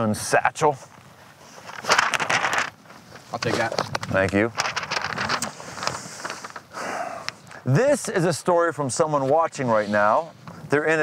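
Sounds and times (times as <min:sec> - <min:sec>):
paper and cloth rustling: 0:00.9 - 0:06.8.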